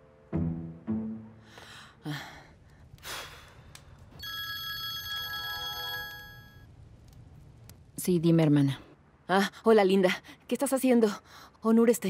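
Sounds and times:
smartphone ringtone: 4.2 - 6.6.

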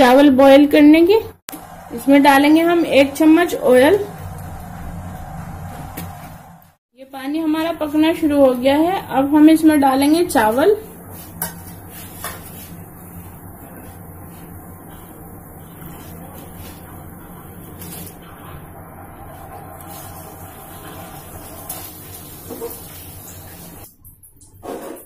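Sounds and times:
pot of water boiling: 1.5 - 6.8, 9.5 - 24.0.

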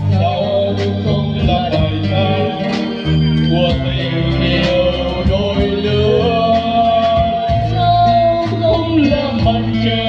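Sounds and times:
live band playing: 0.0 - 10.0
person singing: 0.0 - 10.0.

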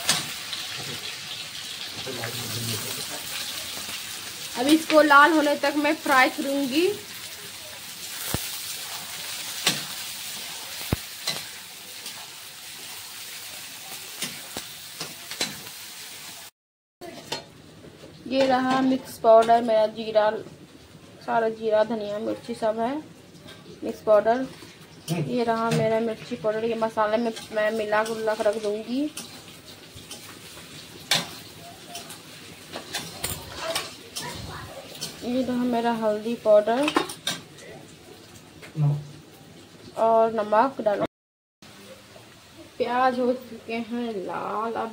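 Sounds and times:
onions sizzling in oil: 0.0 - 41.0, 41.7 - 44.9
spatula scraping and clinking on pan: 27.2 - 34.3.

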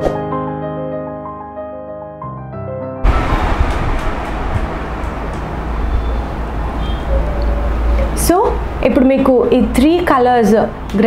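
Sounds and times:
loud steady rumbling: 3.0 - 9.0.

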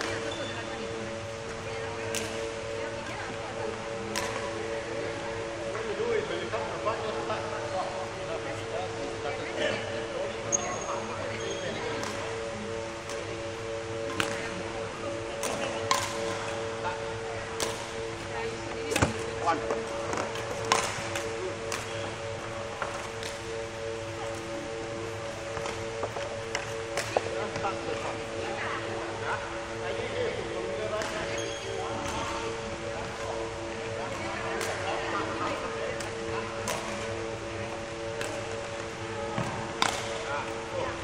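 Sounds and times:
steady low hum: 0.0 - 41.0
rackets hitting shuttlecocks: 2.1 - 2.5, 4.1 - 4.6, 11.9 - 14.6, 15.4 - 16.8, 17.6 - 18.3, 18.9 - 27.6, 31.0 - 31.4, 36.0 - 37.2, 38.0 - 40.3.

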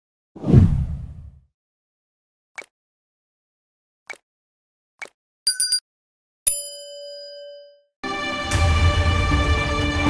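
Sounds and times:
deep whoosh: 0.4 - 1.4.

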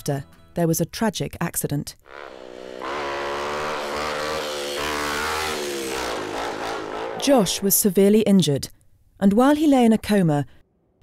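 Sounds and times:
motorcycle engine running: 2.1 - 7.8.

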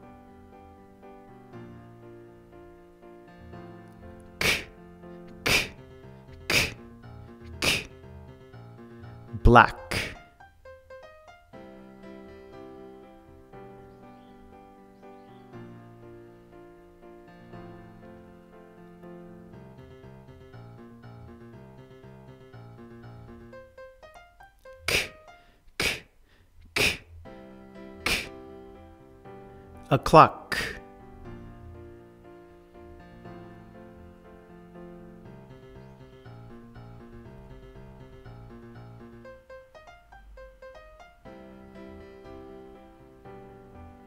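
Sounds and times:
soft background music: 0.0 - 25.5, 27.1 - 44.0
man saying k sound: 4.4 - 4.7, 5.4 - 5.8, 6.5 - 6.8, 7.5 - 7.9, 9.3 - 10.2, 24.8 - 25.2, 25.8 - 26.1, 26.8 - 27.0, 28.1 - 28.3, 29.9 - 30.8.

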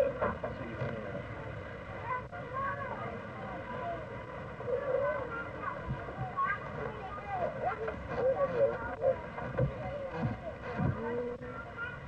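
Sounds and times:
children chattering and calling out: 0.0 - 12.0
faint steady hum: 0.0 - 12.0.

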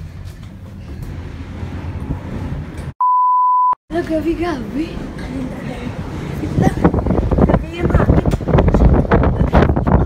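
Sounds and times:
censor bleep: 3.0 - 3.8.

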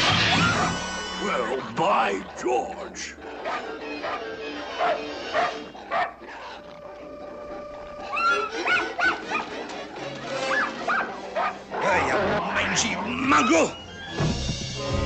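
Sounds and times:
dog barking and yipping: 3.2 - 6.6, 8.1 - 9.6, 10.4 - 12.0
cartoon orchestral music: 6.4 - 15.0.

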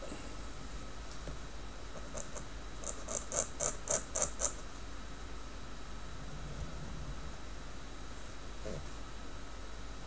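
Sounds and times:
pen nib scratching paper: 2.0 - 4.6.

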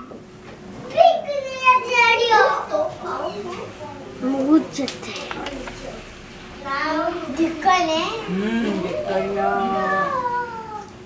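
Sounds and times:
child calling out: 9.6 - 10.9.

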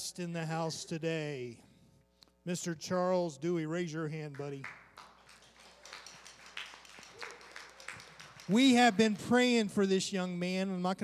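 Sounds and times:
faint applause: 4.6 - 9.6.

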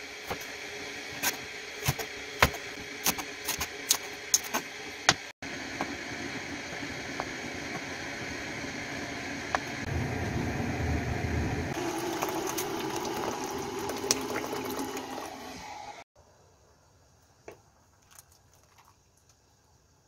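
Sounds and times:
hot water pouring into pot: 11.7 - 16.0.

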